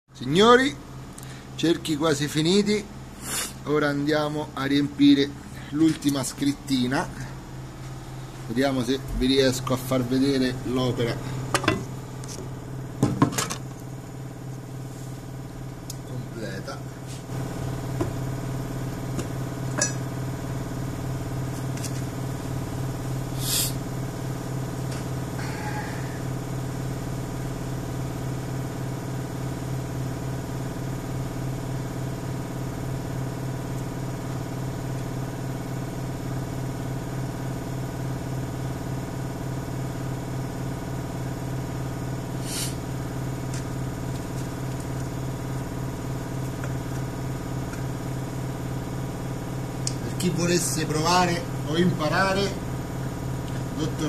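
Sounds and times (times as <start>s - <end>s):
low machine hum: 0.1s - 54.0s.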